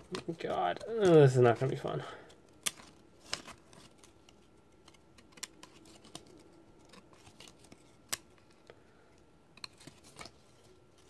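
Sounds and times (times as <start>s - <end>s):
trading cards clicking and snapping: 2.5s - 8.6s.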